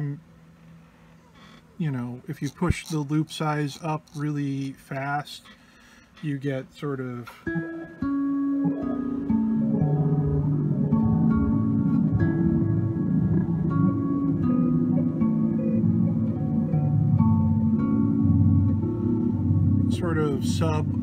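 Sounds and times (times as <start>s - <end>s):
looped guitar fragments with reverb: 7.4s - 21.0s.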